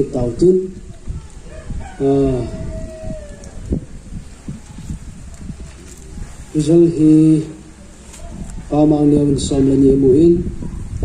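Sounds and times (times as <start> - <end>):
rooster crowing: 1.4 - 4.1.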